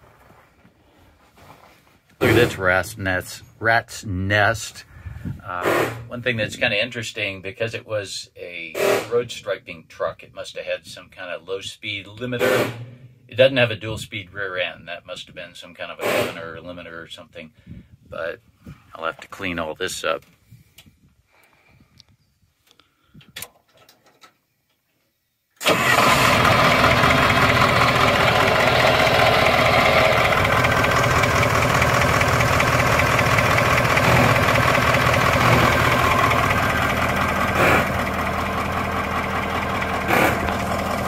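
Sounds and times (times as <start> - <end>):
diesel engine running: 25.6 - 41.0.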